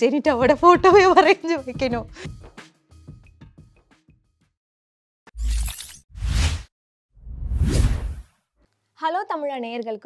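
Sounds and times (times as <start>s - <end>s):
short swish: 6.2s - 8.3s.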